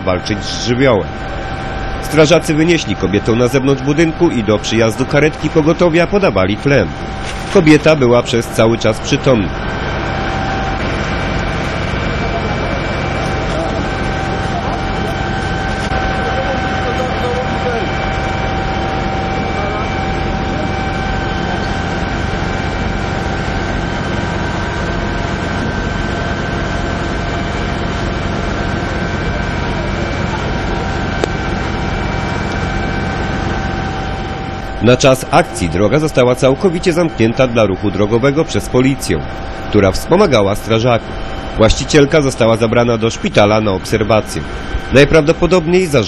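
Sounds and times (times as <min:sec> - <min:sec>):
constant high whine: 0:00.0 - 0:46.0
engines droning: 0:00.0 - 0:46.0.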